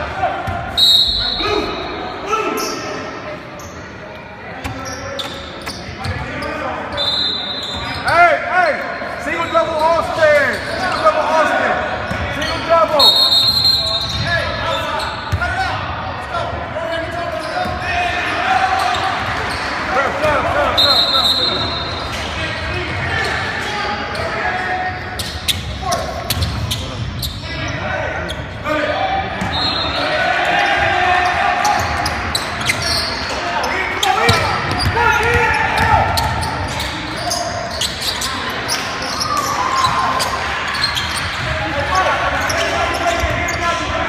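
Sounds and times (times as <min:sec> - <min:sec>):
indistinct shouts and chatter: 0:00.0 - 0:44.0
sneakers squeaking: 0:00.4 - 0:15.6, 0:17.0 - 0:44.0.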